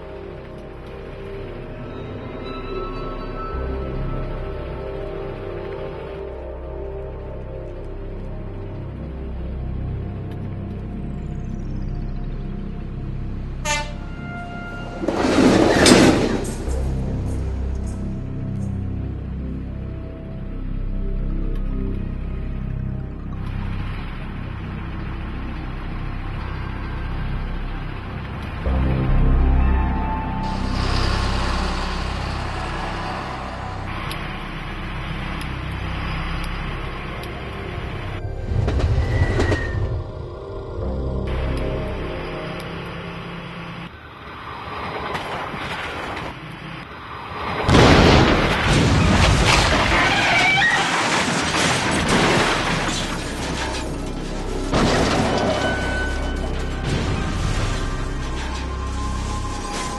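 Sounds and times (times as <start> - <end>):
tense film score: 0.0 - 59.9
train horn: 13.6 - 15.4
train rushing: 13.7 - 18.0, 30.4 - 36.2, 37.8 - 41.5
rush of approaching train: 14.6 - 17.4, 38.4 - 40.8
loud rumble: 27.4 - 43.9.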